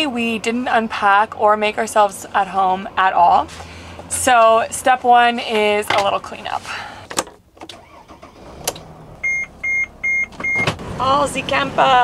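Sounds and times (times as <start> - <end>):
van engine running: 0.0 - 12.0
dashboard warning chime beeping: 9.2 - 10.7.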